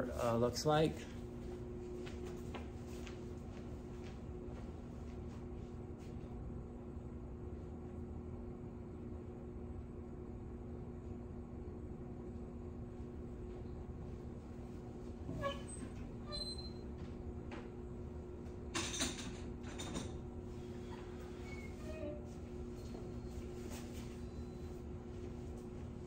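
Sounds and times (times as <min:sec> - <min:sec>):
low room hum: 0:00.0 - 0:26.0
short squeak: 0:15.3 - 0:16.8, 0:21.3 - 0:22.3.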